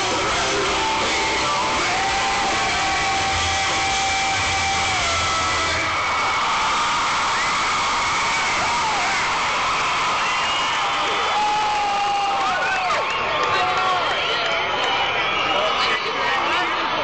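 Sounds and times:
rock concert crowd roar: 0:00.0 - 0:17.0.

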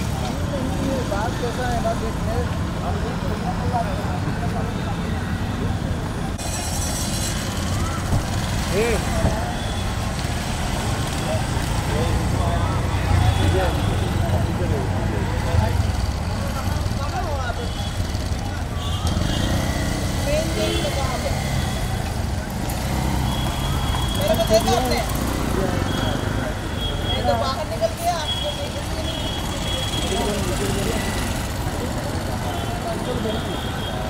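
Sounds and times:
passing motorbike engines rumbling: 0:00.0 - 0:34.0.

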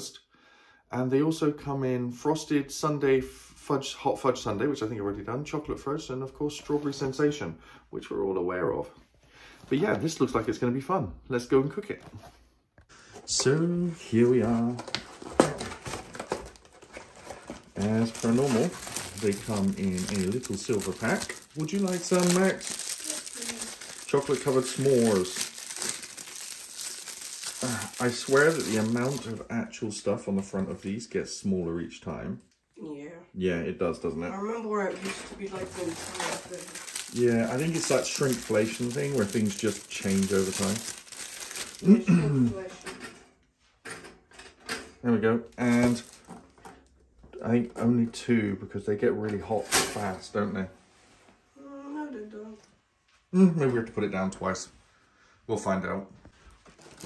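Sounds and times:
cardboard clicks and rustles: 0:14.3 - 0:29.2
person clearing throat: 0:41.8 - 0:42.6.

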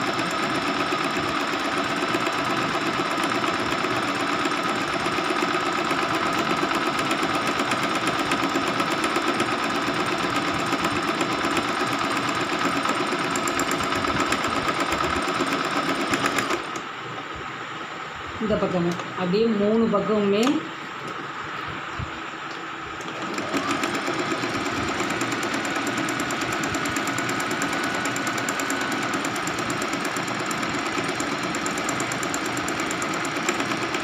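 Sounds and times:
sewing machine stitching: 0:00.0 - 0:16.8, 0:23.0 - 0:34.0.

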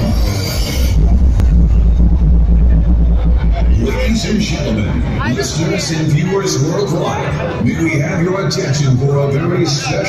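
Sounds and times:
deep sustained bass drone: 0:00.0 - 0:06.8
electronic dance music: 0:00.0 - 0:10.0.

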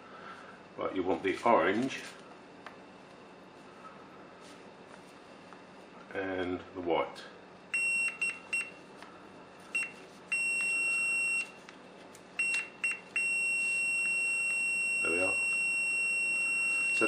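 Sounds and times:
multimeter continuity buzzer tone: 0:07.7 - 0:08.8, 0:09.7 - 0:11.6, 0:12.4 - 0:17.0.

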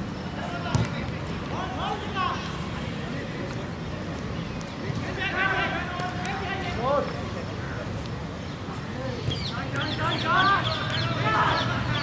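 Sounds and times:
outdoor background noise: 0:00.0 - 0:12.0
football being struck: 0:00.7 - 0:01.0
players shouting: 0:05.0 - 0:07.0, 0:09.3 - 0:12.0.

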